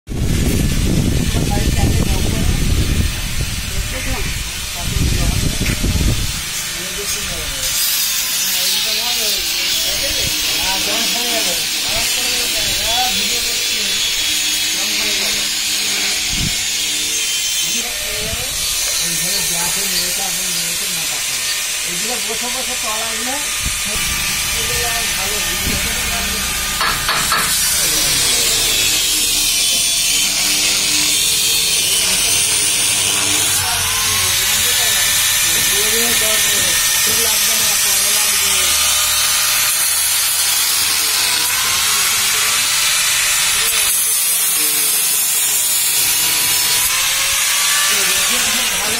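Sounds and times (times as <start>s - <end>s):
loud steady hiss: 0.1s - 48.9s
angle grinder grinding steel: 0.2s - 48.9s
faint voices: 1.2s - 7.8s, 17.6s - 39.0s.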